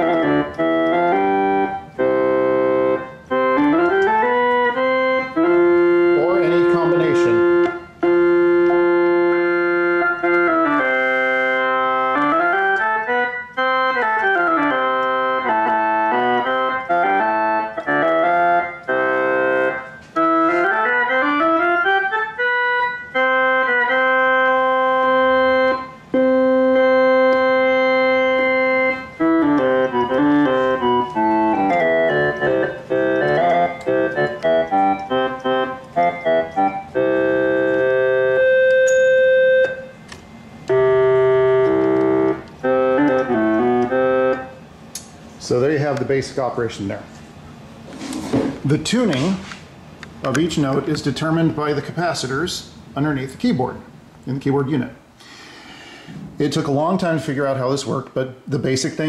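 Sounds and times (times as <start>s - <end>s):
electronic keyboard melody: 0.0s - 45.6s.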